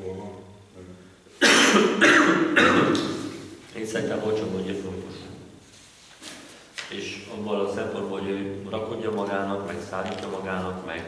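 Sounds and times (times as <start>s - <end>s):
loud cough: 1.4s - 3.3s.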